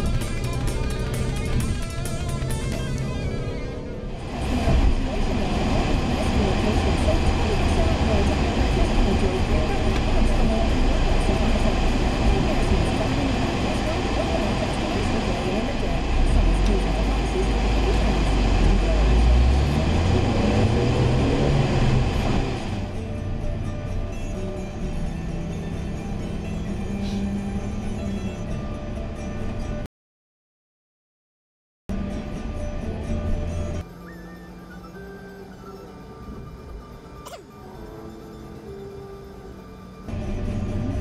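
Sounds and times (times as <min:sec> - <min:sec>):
music with voices on car radio: 0:00.0 - 0:29.8, 0:32.0 - 0:41.0
car engine from inside: 0:04.2 - 0:23.5.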